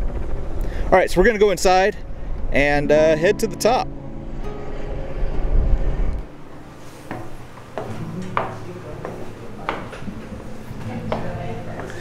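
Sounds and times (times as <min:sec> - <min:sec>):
wind rumbling on microphone: 0:00.0 - 0:02.9, 0:04.2 - 0:06.3
footsteps on metal stairs: 0:07.0 - 0:10.2.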